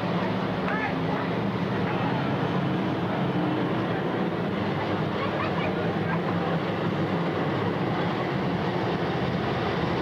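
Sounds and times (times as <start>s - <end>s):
faint voices: 0.0s - 10.0s
race car engines running: 0.0s - 10.0s.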